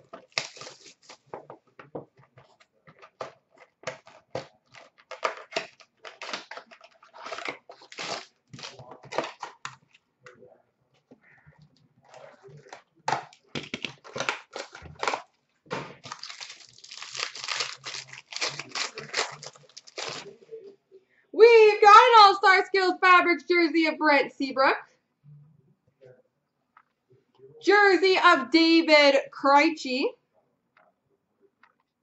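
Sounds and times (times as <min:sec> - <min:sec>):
foil wrapper crinkling and tearing: 0:00.0 - 0:01.5, 0:03.1 - 0:09.8, 0:13.4 - 0:20.4
cards rustling: 0:00.0 - 0:01.6, 0:02.2 - 0:10.0, 0:12.2 - 0:20.4.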